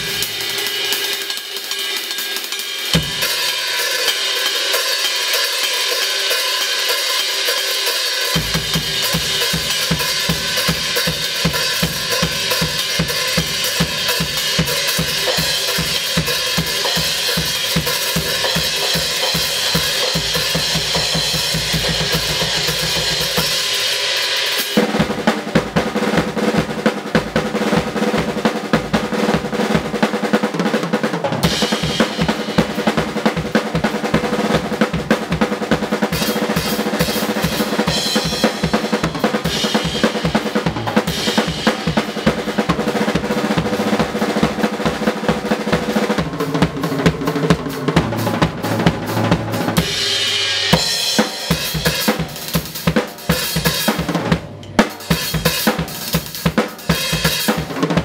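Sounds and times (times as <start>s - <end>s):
cymbal wash: 0.0s - 24.8s
drum kit solo: 0.0s - 58.0s
rapid bass drum strokes: 0.0s - 58.0s.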